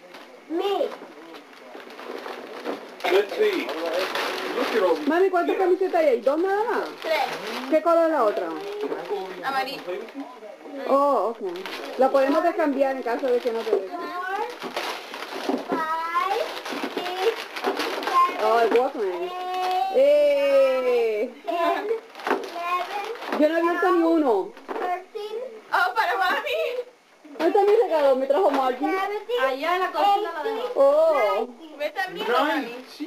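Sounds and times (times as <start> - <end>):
wrapping paper rustling and tearing: 0.0 - 10.3, 11.4 - 20.0, 21.6 - 24.0.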